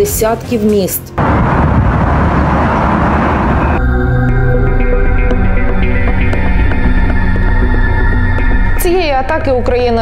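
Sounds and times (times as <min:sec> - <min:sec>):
music: 0:00.0 - 0:01.2, 0:03.8 - 0:10.0
loud explosion rumble: 0:01.2 - 0:03.8.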